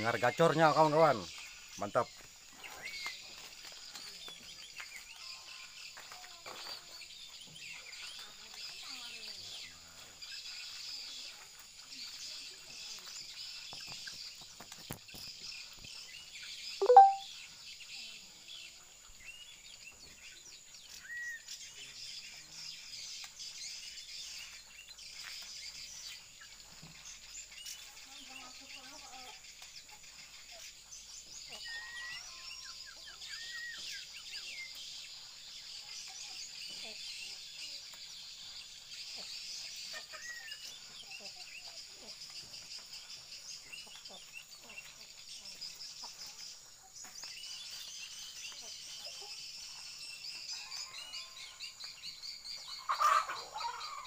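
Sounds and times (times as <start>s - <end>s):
birds chirping and whistling: 0.0s - 5.0s, 29.6s - 54.0s.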